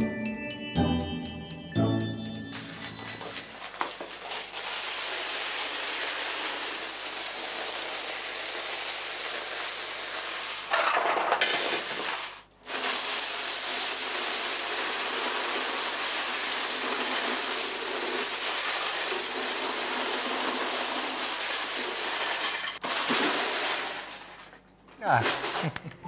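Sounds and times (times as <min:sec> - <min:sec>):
dominoes toppling clatter: 0:02.6 - 0:24.5.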